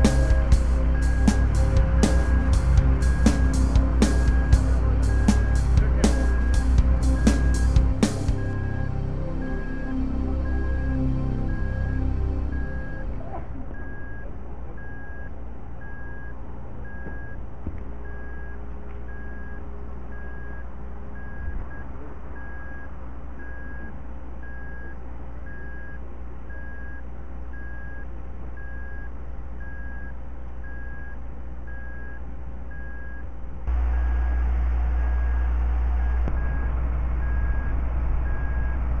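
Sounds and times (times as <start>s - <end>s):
engine idling rumble: 0.0s - 14.8s
reversing alarm beeping: 0.0s - 17.4s, 18.0s - 33.9s, 35.0s - 39.0s.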